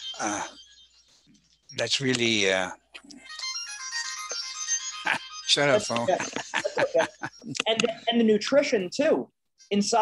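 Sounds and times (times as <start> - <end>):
phone ringtone melody: 0.0 - 2.6, 3.2 - 7.4.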